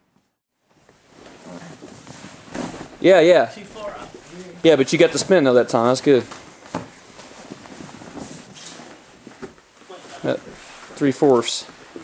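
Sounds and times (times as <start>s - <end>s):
rustling and scuffing on mat: 0.2s - 12.0s.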